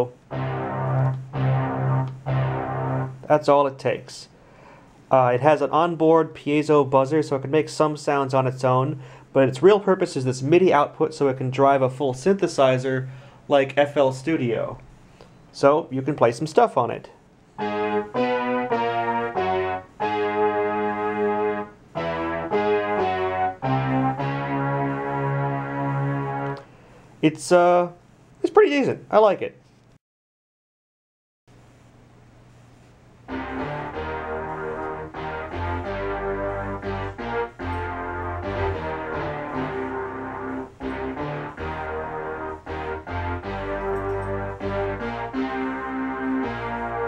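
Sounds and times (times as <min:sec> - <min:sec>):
synthesizer melody: 0:00.0 - 0:03.3, 0:17.6 - 0:26.6, 0:33.3 - 0:47.0.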